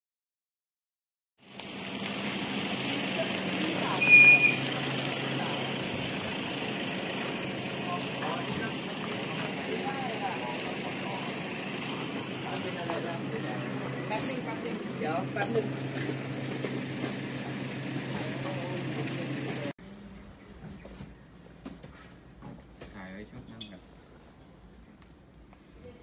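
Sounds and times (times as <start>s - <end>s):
low motor hum: 1.5s - 22.6s
short high-pitched tone: 3.9s - 4.6s.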